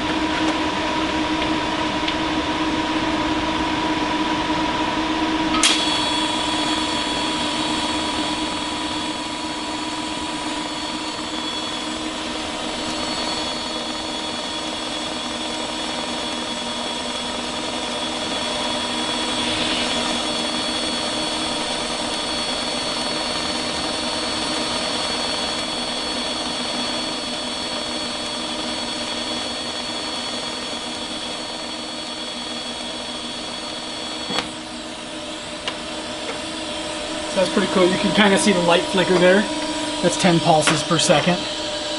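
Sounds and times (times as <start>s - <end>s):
welder click: 5.5s - 6.0s
welding arc buzzing hiss: 5.6s - 41.9s.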